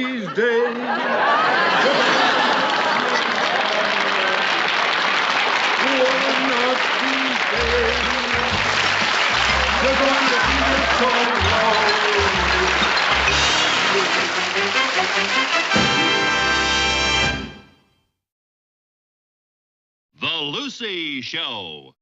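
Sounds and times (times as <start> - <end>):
audience applauding: 0.7 - 17.4
band tune: 5.6 - 17.8
bass line: 7.6 - 15.1.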